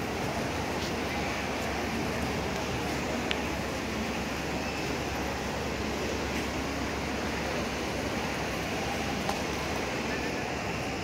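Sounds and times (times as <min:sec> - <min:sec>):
busy open-air background noise: 0:00.0 - 0:11.0.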